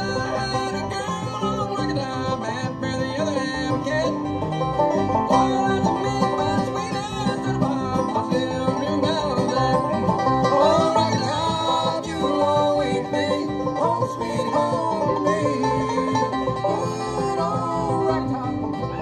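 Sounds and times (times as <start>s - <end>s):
banjo: 0.0s - 19.0s
bluegrass band playing: 0.0s - 19.0s.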